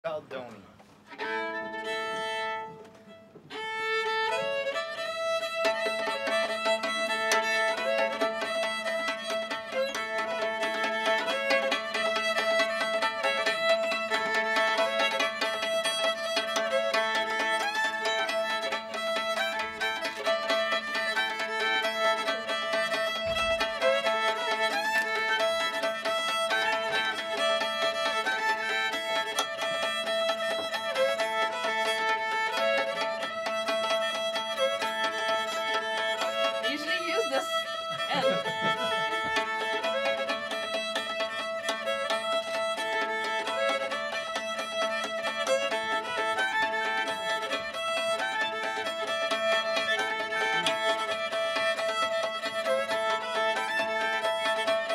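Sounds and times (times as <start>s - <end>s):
bowed fiddle tune: 0.0s - 54.9s
sticks beating fiddle strings: 0.4s - 54.9s.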